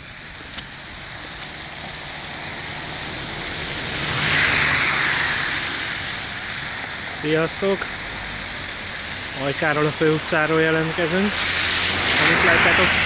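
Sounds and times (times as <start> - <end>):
car passing on slushy street: 0.0 - 13.0.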